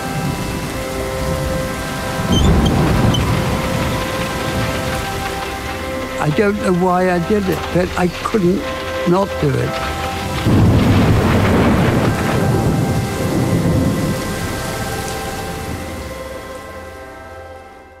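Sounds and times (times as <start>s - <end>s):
low rumble of thunder: 0.0s - 16.4s
storm hiss: 0.0s - 17.3s
held music chord: 0.0s - 18.0s.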